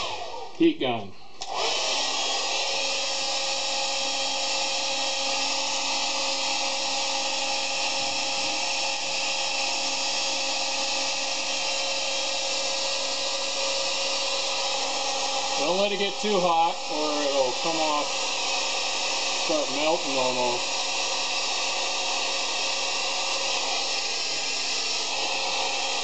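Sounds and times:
heat gun blowing air: 0.0 - 0.6, 1.4 - 26.0.

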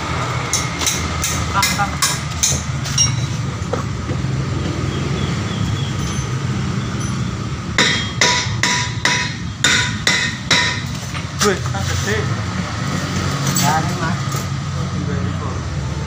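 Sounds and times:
ringing metallic hammer blows: 6.0 - 11.0.

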